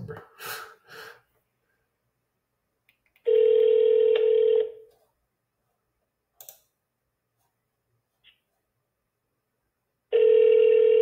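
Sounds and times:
phone ringback tone: 3.3s - 4.8s, 10.1s - 11.0s.

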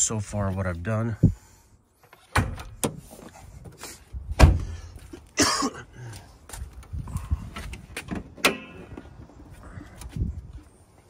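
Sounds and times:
person coughing: 5.4s - 6.1s.

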